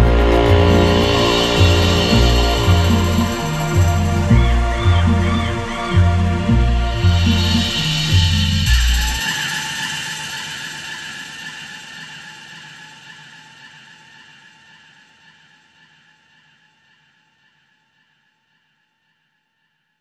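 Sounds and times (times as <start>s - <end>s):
held high electronic tone: 0.0s - 9.2s.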